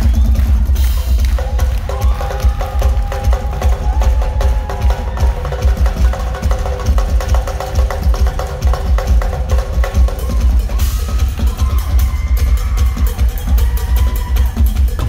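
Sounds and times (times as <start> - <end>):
drum kit solo: 0.0 - 15.0.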